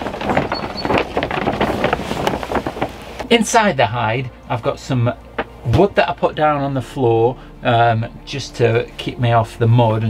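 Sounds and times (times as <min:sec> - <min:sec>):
plastic sheeting crinkling: 0:00.0 - 0:03.8.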